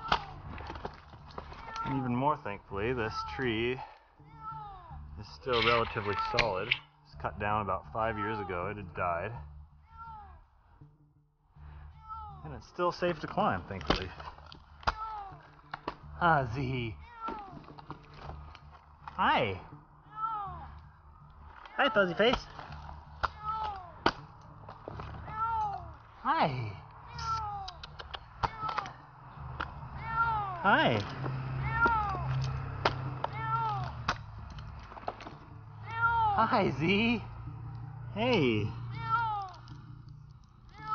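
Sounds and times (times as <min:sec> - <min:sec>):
cat meowing: 0:30.0 - 0:30.7, 0:31.6 - 0:32.4, 0:33.3 - 0:33.9.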